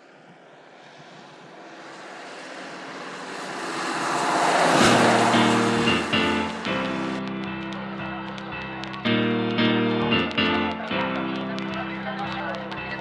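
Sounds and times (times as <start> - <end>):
music: 5.0 - 13.0.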